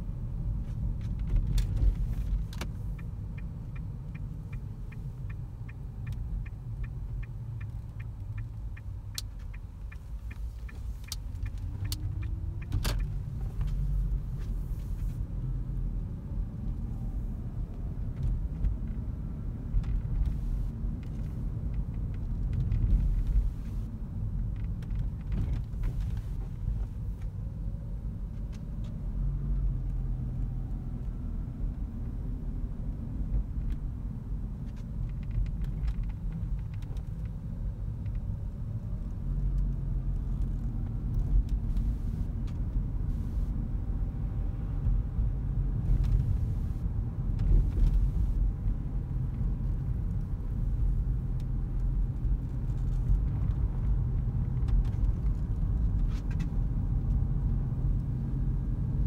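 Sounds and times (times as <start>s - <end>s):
road and tyre rumble in car cabin: 0.0s - 59.0s.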